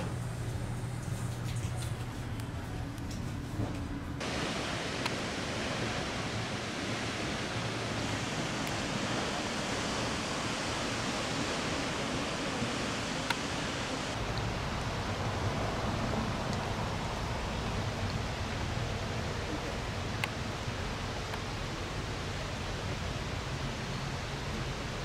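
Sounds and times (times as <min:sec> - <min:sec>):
waterfall roaring: 0:04.2 - 0:25.0.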